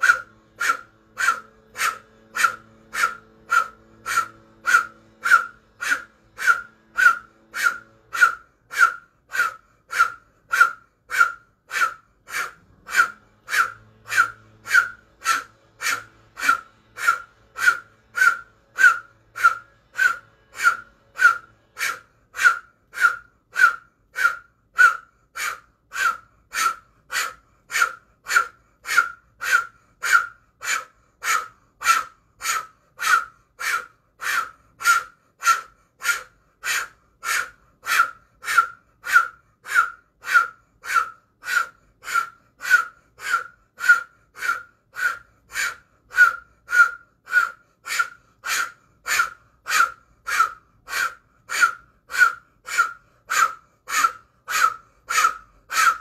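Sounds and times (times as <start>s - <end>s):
sharp forceful breaths: 0.0s - 56.0s.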